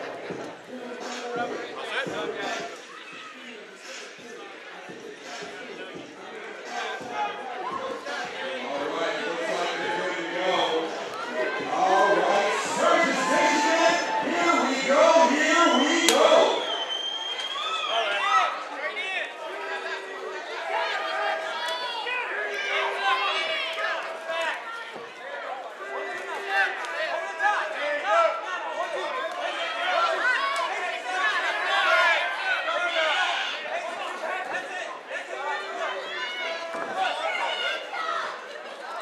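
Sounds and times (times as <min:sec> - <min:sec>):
crowd shouting and calling out: 0:00.0 - 0:39.0.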